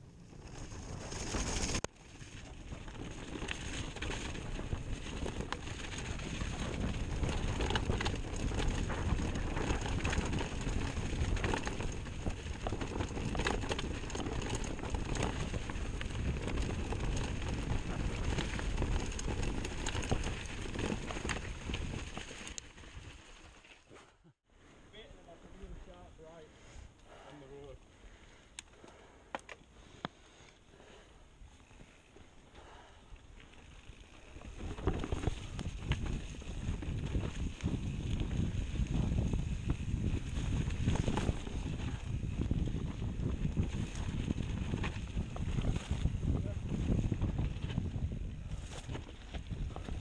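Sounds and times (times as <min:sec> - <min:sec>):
wind rumble on microphone: 0:00.0 - 0:23.1, 0:33.8 - 0:50.0
bike rattling over roots: 0:00.0 - 0:23.9, 0:31.4 - 0:50.0
bike tyres rolling on dirt: 0:00.0 - 0:50.0.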